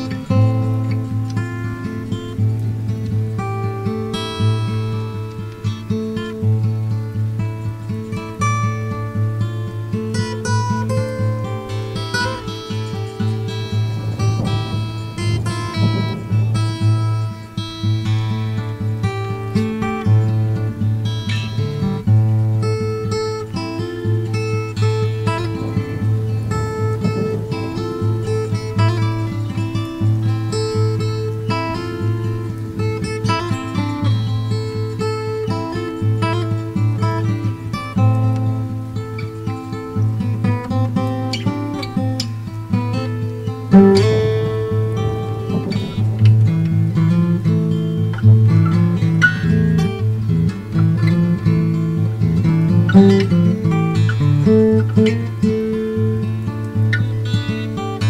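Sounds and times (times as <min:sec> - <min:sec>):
plucked acoustic guitar: 0:00.0 - 0:58.0.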